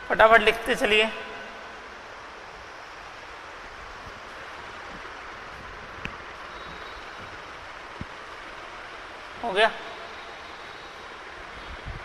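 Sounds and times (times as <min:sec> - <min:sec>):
room tone hiss: 0:00.0 - 0:12.0.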